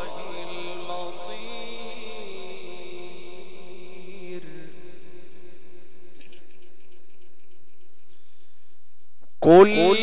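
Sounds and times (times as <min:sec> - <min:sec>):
man chanting recitation: 0:00.0 - 0:05.5, 0:09.4 - 0:10.0.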